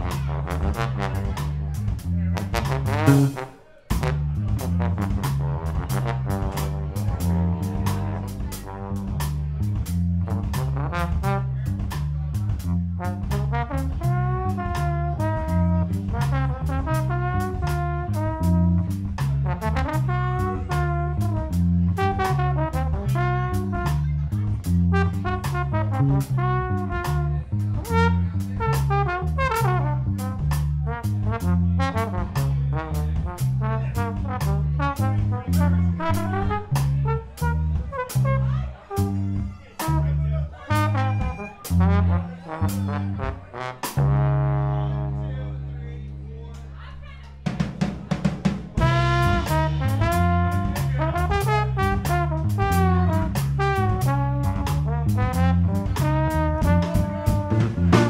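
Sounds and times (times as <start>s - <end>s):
trombone through effects: 0.0s - 9.4s, 10.2s - 11.8s, 12.6s - 24.1s, 24.7s - 45.8s, 48.8s - 58.0s
drum kit steady beat: 0.0s - 44.4s, 47.4s - 58.0s
electric bass line: 0.0s - 46.7s, 48.8s - 58.0s.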